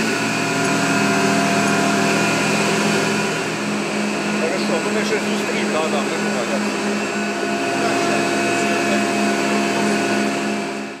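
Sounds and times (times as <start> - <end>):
boiler machinery droning: 0.0 - 11.0.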